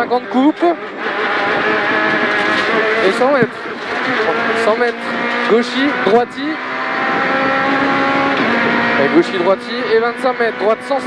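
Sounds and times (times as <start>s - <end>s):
tyre and road noise: 0.0s - 11.0s
car engine under load: 0.3s - 11.0s.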